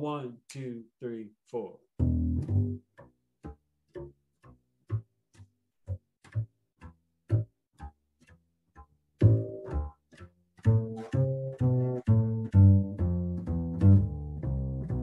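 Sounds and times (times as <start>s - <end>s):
pizzicato double bass walking line: 2.0s - 15.0s.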